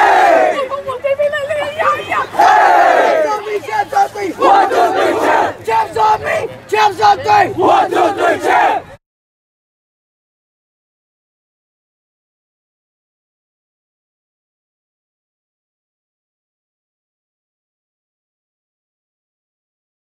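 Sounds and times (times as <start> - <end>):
group of kids chanting: 0.0 - 0.6, 4.1 - 5.6, 7.1 - 8.8.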